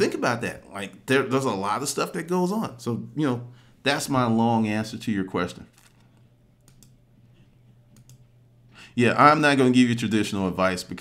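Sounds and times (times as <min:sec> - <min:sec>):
low steady hum: 0:00.0 - 0:11.0
computer mouse clicks: 0:05.9 - 0:07.0, 0:07.9 - 0:08.3.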